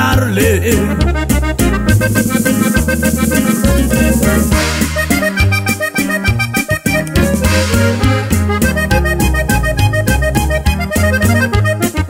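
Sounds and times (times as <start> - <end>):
bass notes: 0.0 - 12.0
button accordion melody: 0.0 - 12.0.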